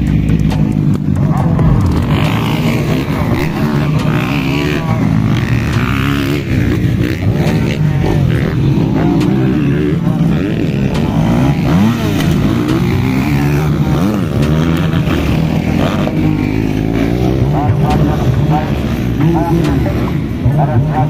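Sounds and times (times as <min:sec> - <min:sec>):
dirt bike engines revving: 0:00.0 - 0:21.0.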